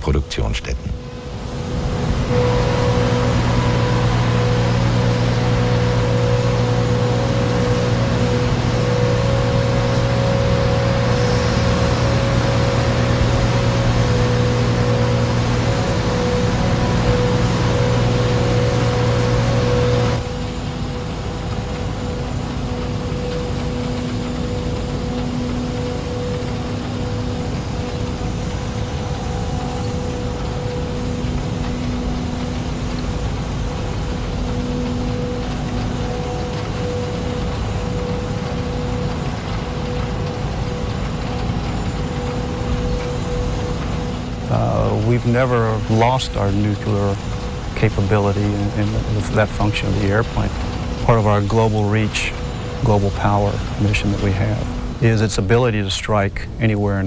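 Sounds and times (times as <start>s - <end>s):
machinery drone: 0.0s - 57.0s
rushing noise: 0.0s - 57.0s.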